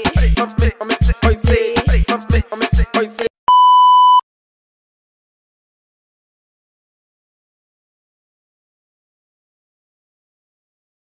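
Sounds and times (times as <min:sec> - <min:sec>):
music with heavy kick drum: 0:00.0 - 0:02.9
steady test-tone beep: 0:03.5 - 0:04.2.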